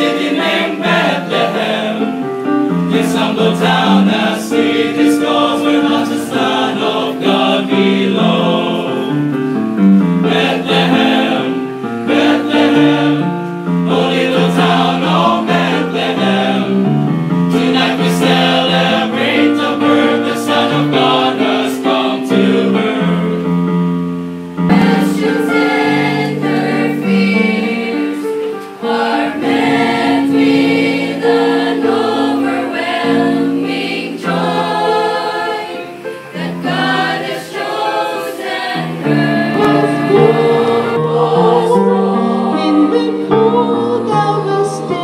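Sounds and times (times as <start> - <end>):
men's choir singing: 0.0 - 23.5, 24.7 - 45.0
women's choir singing: 0.0 - 23.6, 24.3 - 45.0.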